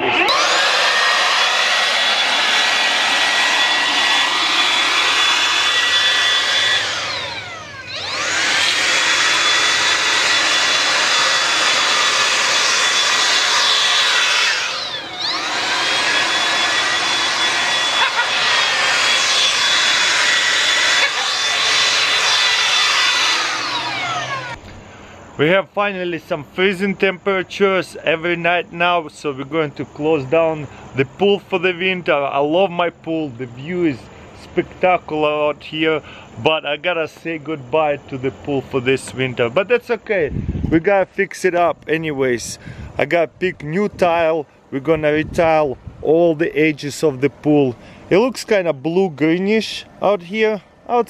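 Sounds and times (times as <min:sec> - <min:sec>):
leaf blower whine and air rush: 0:00.0 - 0:25.4, 0:33.9 - 0:36.4, 0:42.4 - 0:51.0.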